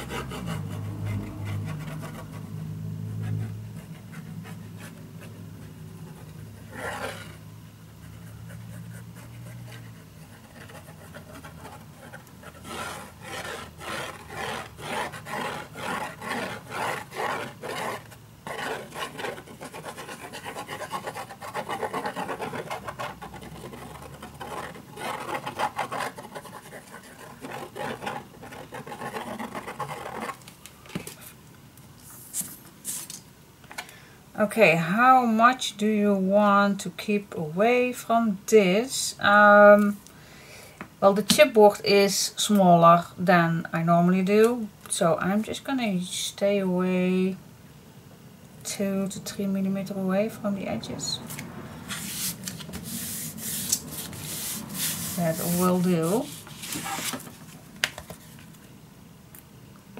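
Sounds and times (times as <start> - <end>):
low steady hum: 0.0 - 59.9.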